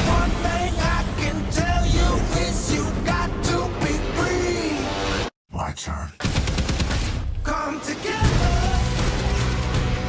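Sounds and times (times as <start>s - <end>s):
person speaking: 5.5s - 6.2s
automatic gunfire: 6.2s - 7.2s.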